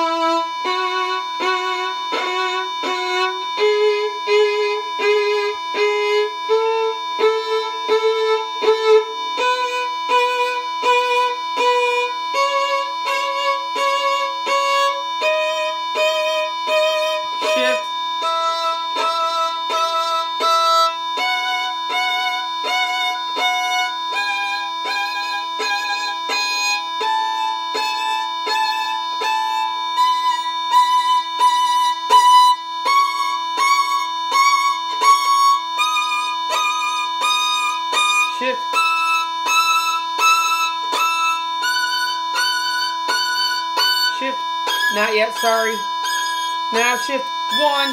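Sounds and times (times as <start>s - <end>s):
steady drone tone: 0.0s - 47.9s
violin playing a scale: 0.0s - 47.9s.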